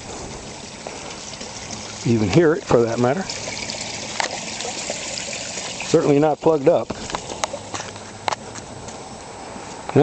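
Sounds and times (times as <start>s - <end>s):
water rushing into storm drain: 0.0s - 7.8s.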